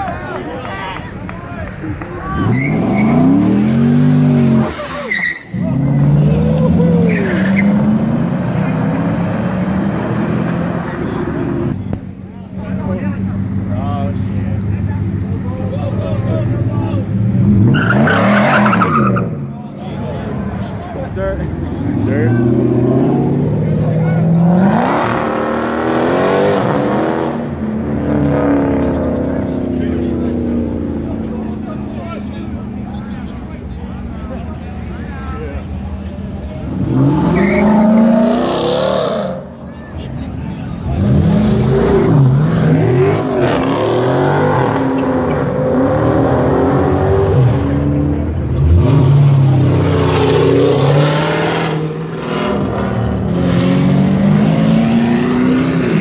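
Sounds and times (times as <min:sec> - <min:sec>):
car engines revving and accelerating: 0:00.0 - 0:56.0
crowd chatter: 0:00.0 - 0:56.0.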